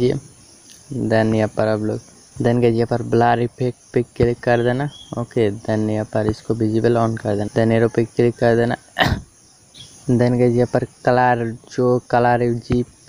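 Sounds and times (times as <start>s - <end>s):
man talking: 0.0s - 9.2s, 10.0s - 13.0s
faint high-pitched whine: 0.0s - 13.0s.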